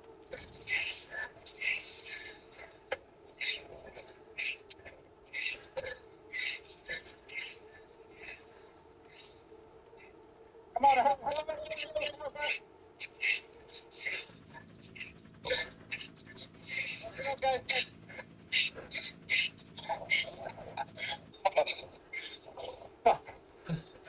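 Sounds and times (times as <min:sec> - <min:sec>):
hard rapid breathing: 0:00.1 - 0:10.6, 0:12.0 - 0:24.0.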